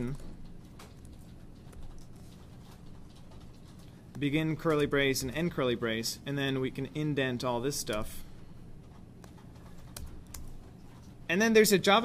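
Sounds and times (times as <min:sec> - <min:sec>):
keyboard keystrokes: 0:08.9 - 0:10.7.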